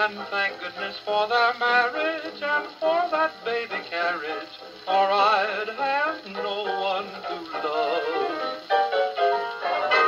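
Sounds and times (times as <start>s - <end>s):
person singing: 0.0s - 8.8s, 9.5s - 10.0s
dance band record on gramophone: 0.0s - 10.0s.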